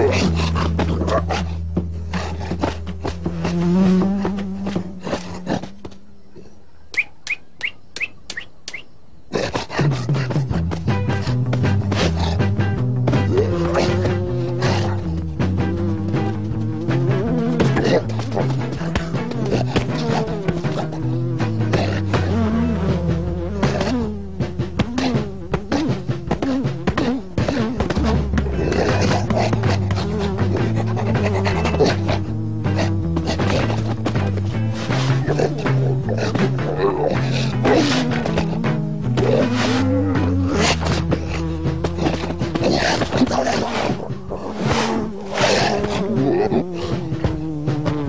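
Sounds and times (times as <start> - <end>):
cartoon insect buzz: 0.0 - 5.9, 11.1 - 48.0
lion-like roar: 25.0 - 47.3.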